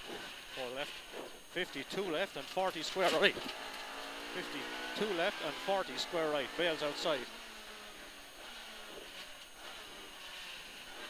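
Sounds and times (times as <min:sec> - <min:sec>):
engine and road noise in car cabin: 0:00.0 - 0:11.0.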